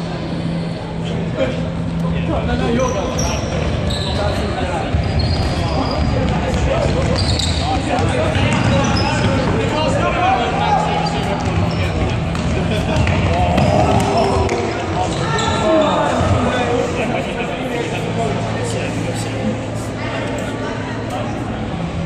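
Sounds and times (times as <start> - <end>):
trainers squeaking on wooden floor: 7.0 - 8.0
players shouting: 13.2 - 17.0.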